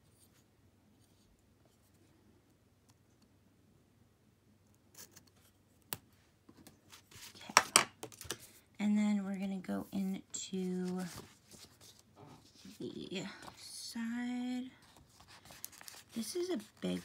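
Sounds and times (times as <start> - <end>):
paper rustling: 10.7 - 13.6, 14.8 - 17.0.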